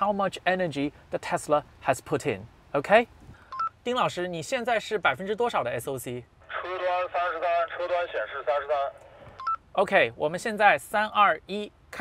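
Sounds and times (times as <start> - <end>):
voice through a phone: 6.4 - 9.0.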